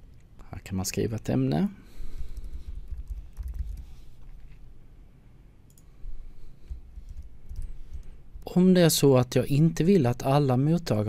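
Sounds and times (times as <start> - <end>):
keyboard keystrokes: 2.4 - 3.9.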